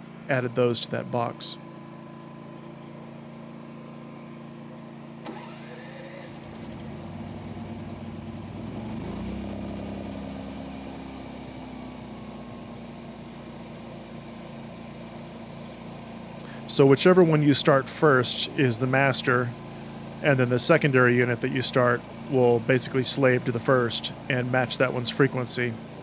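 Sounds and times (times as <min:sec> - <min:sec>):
generator engine running: 0:00.0 - 0:26.0
steady engine hum: 0:00.0 - 0:26.0.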